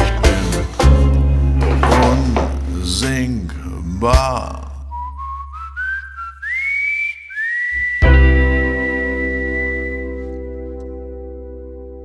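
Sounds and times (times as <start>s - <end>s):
whistled melody: 4.8s - 11.2s.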